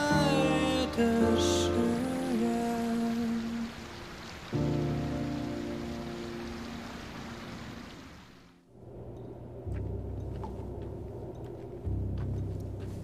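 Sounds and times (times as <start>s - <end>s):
steady hiss: 0.0s - 9.7s
slow tender song: 0.0s - 13.0s.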